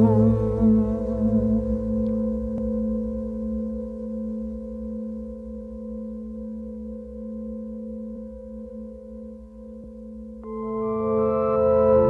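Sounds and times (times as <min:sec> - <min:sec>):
ambient music drone: 0:00.0 - 0:12.0
faint low rumble: 0:00.0 - 0:12.0.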